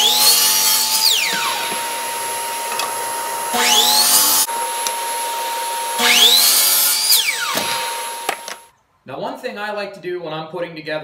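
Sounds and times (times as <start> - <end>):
miter saw motor whine: 0.0 - 8.7
saw cutting wood: 0.0 - 8.7.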